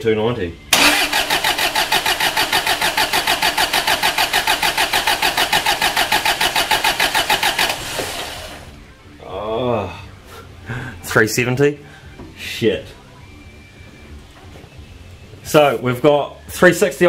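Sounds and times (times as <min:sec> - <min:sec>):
starter motor cranking: 0:00.7 - 0:08.7.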